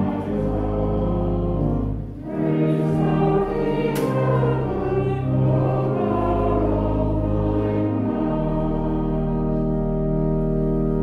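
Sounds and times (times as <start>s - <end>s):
congregation singing a hymn: 0.0s - 11.0s
organ: 0.0s - 11.0s
click: 3.9s - 4.4s.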